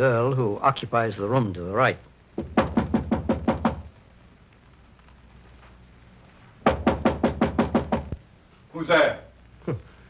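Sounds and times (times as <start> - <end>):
knocking on a door: 2.4 - 3.9, 6.6 - 8.2.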